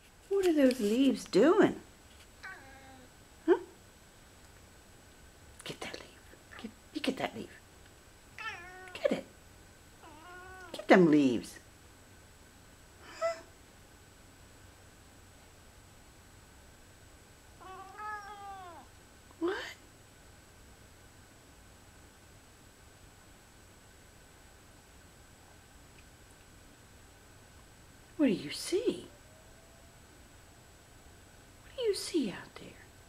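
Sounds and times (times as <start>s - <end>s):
cat calling: 2.4s - 3.1s, 8.4s - 9.0s, 10.0s - 10.9s, 13.0s - 13.5s, 17.6s - 18.9s
woman saying huh: 3.5s - 3.7s.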